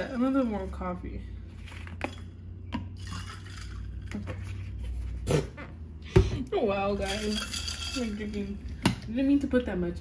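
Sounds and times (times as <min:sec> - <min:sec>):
low steady hum: 0:00.0 - 0:10.0
coffee pouring into glass cup: 0:02.8 - 0:04.3.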